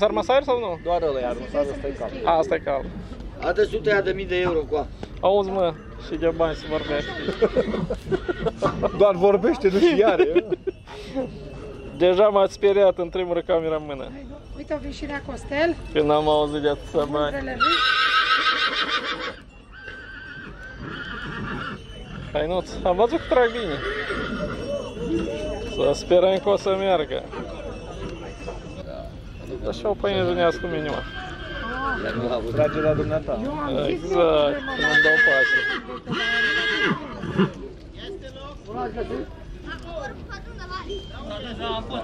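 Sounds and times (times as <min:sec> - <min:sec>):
horse whinnying: 0:00.6 - 0:02.6, 0:05.8 - 0:08.8, 0:17.6 - 0:25.4, 0:30.2 - 0:33.4, 0:34.1 - 0:37.6.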